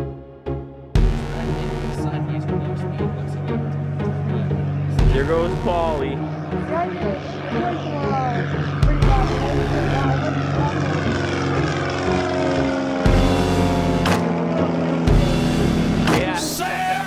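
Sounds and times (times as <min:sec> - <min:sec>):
propeller airplane passing overhead: 0:00.0 - 0:17.0
voices: 0:01.3 - 0:11.9, 0:16.0 - 0:17.0.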